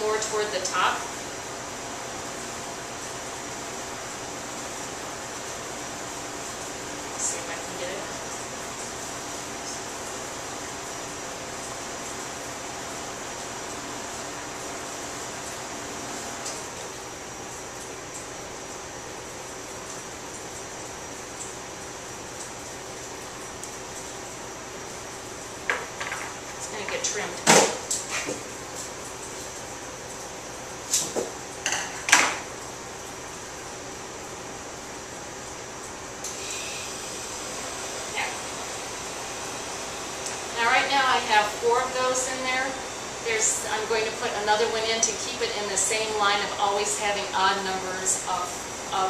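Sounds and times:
room hum: 0:00.0 - 0:49.0.

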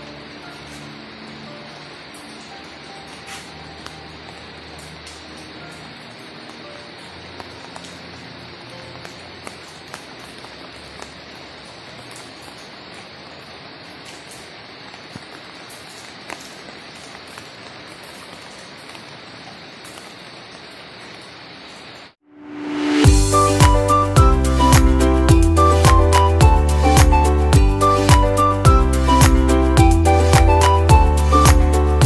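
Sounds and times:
drips ticking: 0:00.0 - 0:14.0
light rain hissing: 0:00.0 - 0:32.0.

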